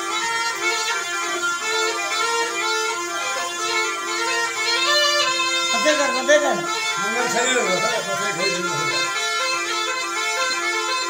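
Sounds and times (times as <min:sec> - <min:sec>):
double reed pipe melody over drone: 0:00.0 - 0:11.0.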